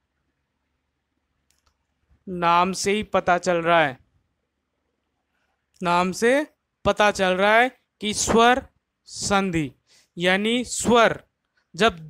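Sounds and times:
faint clicks: 1.4 - 2.0.

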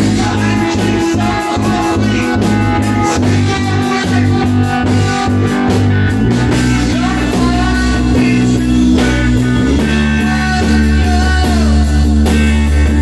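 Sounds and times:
cymbals keeping a beat: 0.0 - 13.0
rock band playing live: 0.0 - 13.0.

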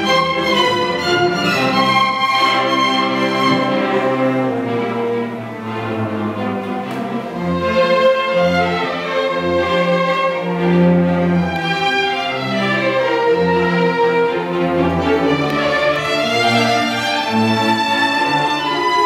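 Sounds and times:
sustained low cello and bass notes: 0.0 - 19.0
violins bowing: 0.0 - 19.0.

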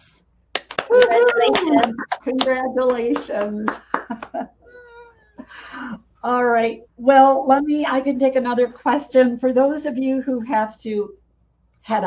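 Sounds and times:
woman laughing: 1.0 - 2.6.

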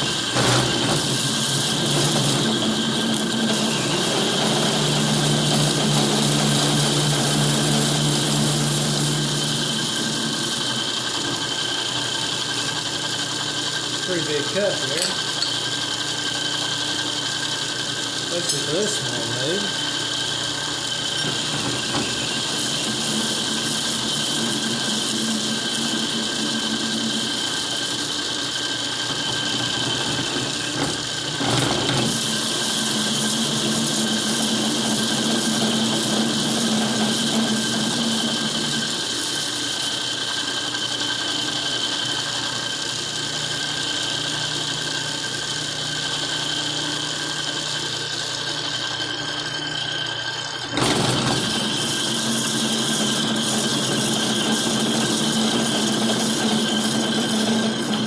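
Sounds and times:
metal lathe machining whine: 0.0 - 58.0.

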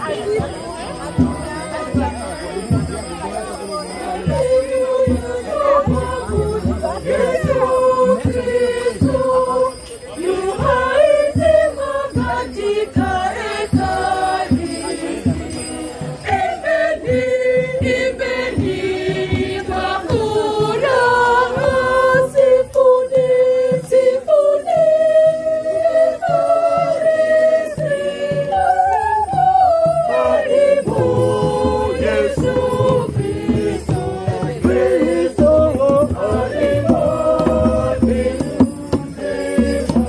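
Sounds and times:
hand percussion drum and jingles: 0.0 - 40.0
group singing a hymn: 4.0 - 40.0.

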